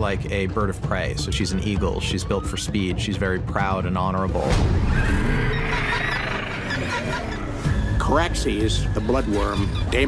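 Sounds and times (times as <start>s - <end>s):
orchestral music with low drone: 0.0s - 10.0s
creature screeching roar: 4.8s - 7.5s.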